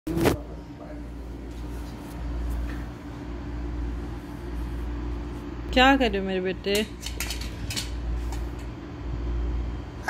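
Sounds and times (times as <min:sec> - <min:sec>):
low steady hum and rumble: 0:00.1 - 0:10.0.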